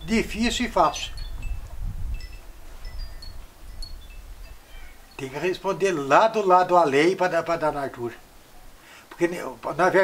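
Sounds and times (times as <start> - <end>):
high tinkling tones: 0.9 - 5.6.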